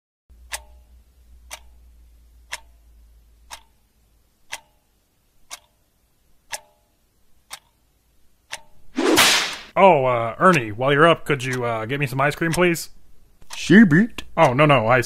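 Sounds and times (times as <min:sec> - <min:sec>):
faint low hum: 0:00.3 - 0:08.9
pendulum clock ticking: 0:00.3 - 0:08.9, 0:09.7 - 0:12.8, 0:13.4 - 0:15.0.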